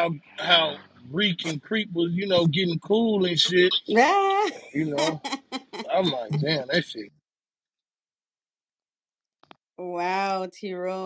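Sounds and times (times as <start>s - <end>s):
voice cut off: 0.0s - 7.1s.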